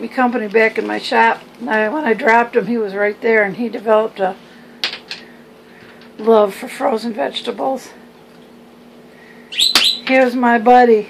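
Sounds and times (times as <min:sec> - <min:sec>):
faint steady hum: 0:00.0 - 0:11.0
high-pitched chirping squeak: 0:09.5 - 0:10.2.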